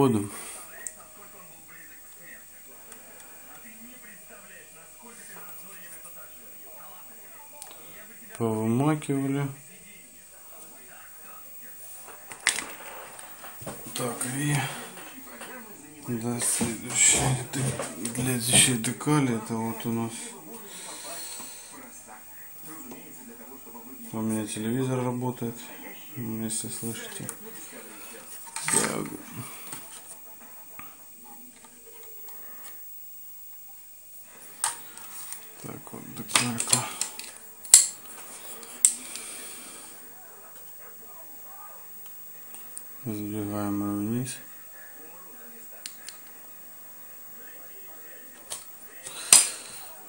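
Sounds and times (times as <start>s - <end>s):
faint television talk: 0.0s - 50.0s.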